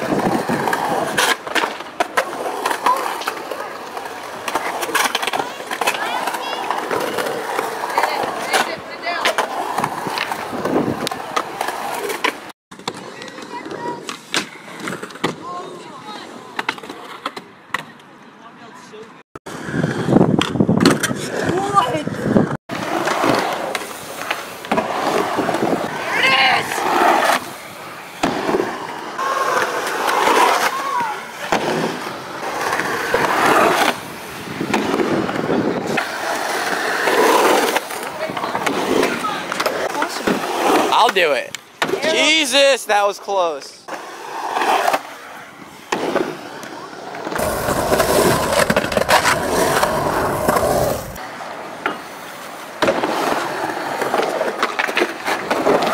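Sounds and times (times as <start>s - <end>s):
skateboard truck impacts: 0.0s - 15.6s, 22.7s - 42.3s, 43.9s - 55.9s
skateboards rolling and clacking: 0.0s - 18.2s, 19.5s - 42.4s, 43.6s - 55.9s.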